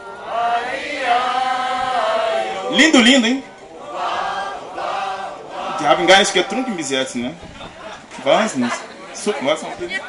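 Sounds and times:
group chanting in unison: 0:00.0 - 0:02.8, 0:03.7 - 0:06.4.

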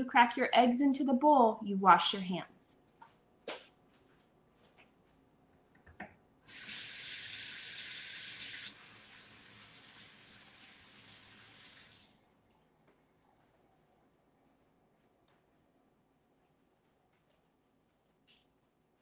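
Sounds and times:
faucet running: 0:06.5 - 0:12.2.

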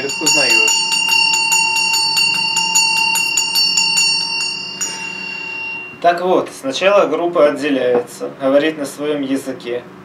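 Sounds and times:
hand bell ringing: 0:00.0 - 0:06.2.

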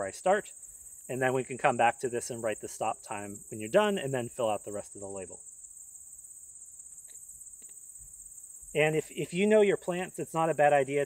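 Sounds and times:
insects chirping: 0:00.0 - 0:11.0.

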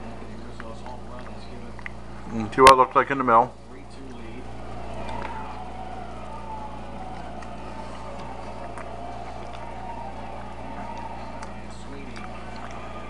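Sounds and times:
steady low hum: 0:00.0 - 0:13.0
siren wailing: 0:02.2 - 0:13.0.

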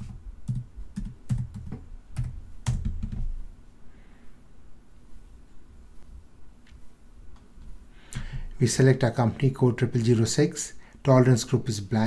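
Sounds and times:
computer keyboard typing: 0:00.0 - 0:03.4.

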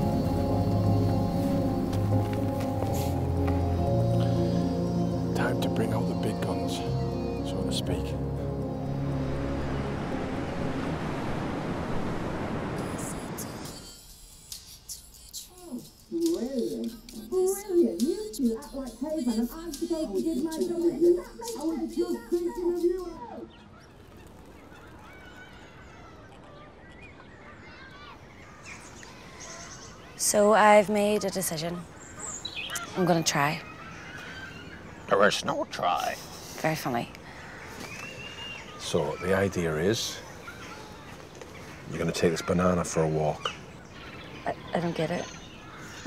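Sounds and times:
held music chords: 0:00.0 - 0:11.8, 0:12.8 - 0:23.2
surf breaking on shore: 0:09.1 - 0:13.8
bird chirps: 0:31.7 - 0:35.5, 0:37.4 - 0:46.0.

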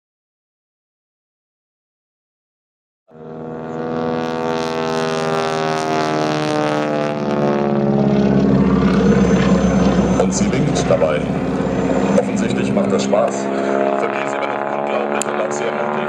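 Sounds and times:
biplane engine droning: 0:03.1 - 0:16.0.

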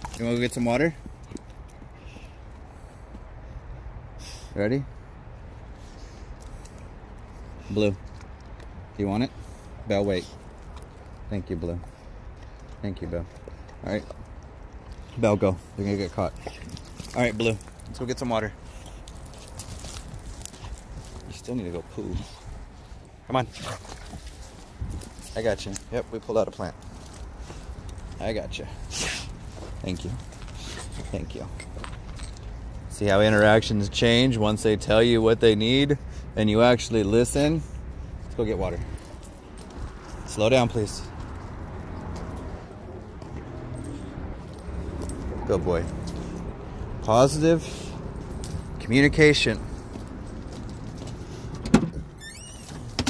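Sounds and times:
low outdoor hum: 0:00.0 - 0:53.0
footsteps on wet grass and mud: 0:13.6 - 0:31.2, 0:47.6 - 0:51.5.

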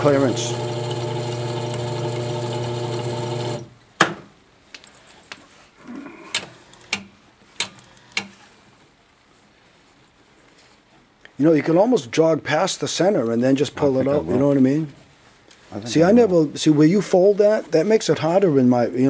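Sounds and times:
machine motor humming: 0:00.0 - 0:03.7.

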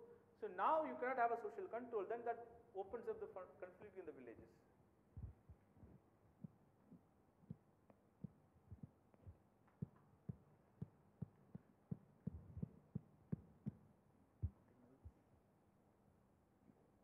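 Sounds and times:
soft low thumps: 0:05.2 - 0:15.2.

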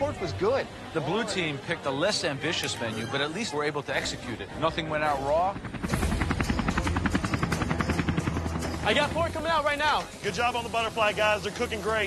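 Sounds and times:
helicopter rotor chopping: 0:04.4 - 0:11.8.

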